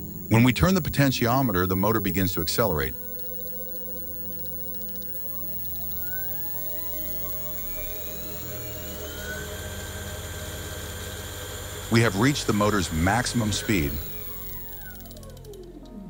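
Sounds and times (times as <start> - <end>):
electric motor whine: 0.0 - 16.0.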